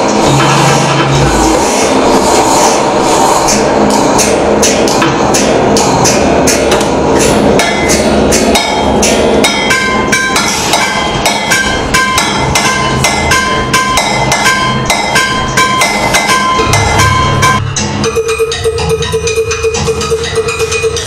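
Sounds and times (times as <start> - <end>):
low drone: 0.0 - 21.0
rapid metallic clanking: 0.0 - 21.0.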